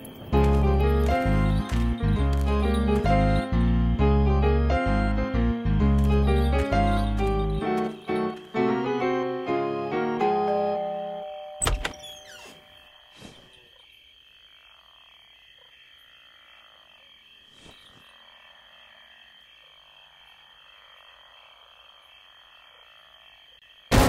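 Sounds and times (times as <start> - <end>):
frogs croaking: 0.0 - 24.0.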